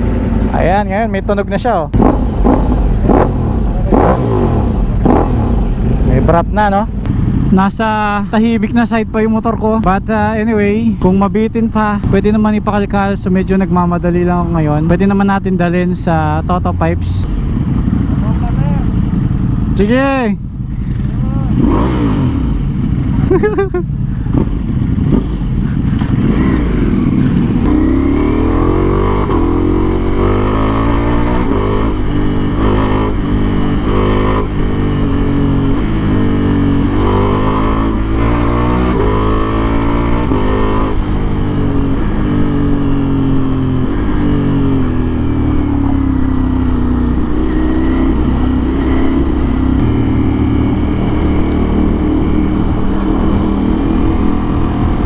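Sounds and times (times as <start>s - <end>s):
loud motorcycle engine accelerating: 1.9s - 7.5s, 21.3s - 55.0s.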